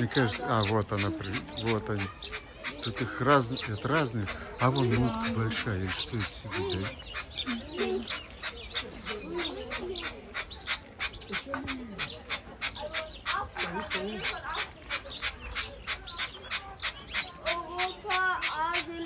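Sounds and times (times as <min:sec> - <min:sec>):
birds chirping: 0:00.0 - 0:19.0
lower bird calls: 0:00.0 - 0:19.0.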